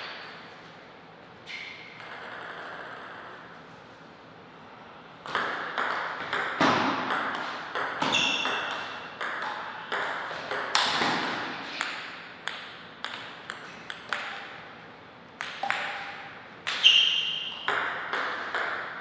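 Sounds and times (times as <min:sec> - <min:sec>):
ball bouncing on floor: 0:02.0 - 0:03.4, 0:05.2 - 0:14.5, 0:15.4 - 0:19.0
ping pong ball clicking off bats: 0:02.0 - 0:03.5, 0:05.2 - 0:14.7, 0:15.4 - 0:19.0.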